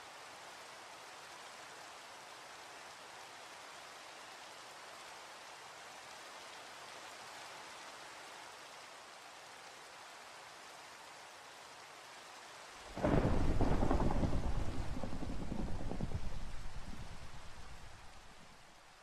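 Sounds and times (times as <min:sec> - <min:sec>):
steady rain: 0:00.0 - 0:19.0
thunder rolling: 0:12.9 - 0:18.5.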